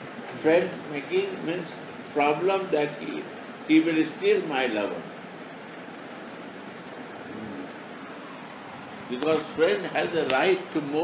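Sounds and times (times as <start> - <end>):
background hiss: 0.0 - 11.0
faint voice: 7.3 - 7.8.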